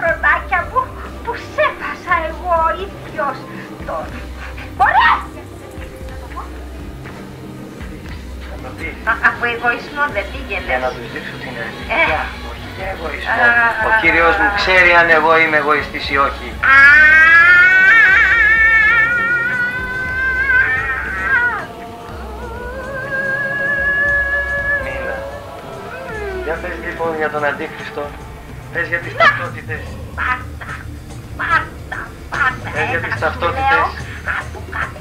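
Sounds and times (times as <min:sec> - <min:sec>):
low background music: 0:00.0 - 0:35.0
woman crying out: 0:03.5 - 0:06.5, 0:16.6 - 0:26.9, 0:29.1 - 0:35.0
woman shrieking: 0:03.5 - 0:06.5, 0:16.6 - 0:26.8, 0:29.1 - 0:35.0.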